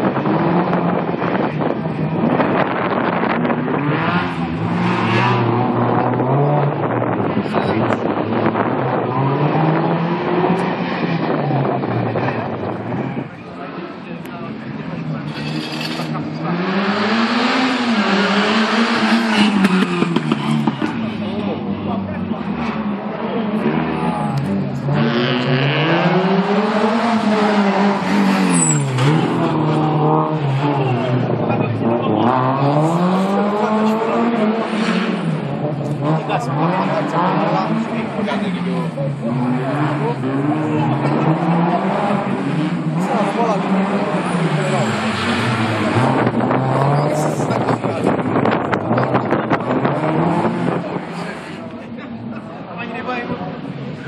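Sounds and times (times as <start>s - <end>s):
car engine revving: 0.0s - 54.0s.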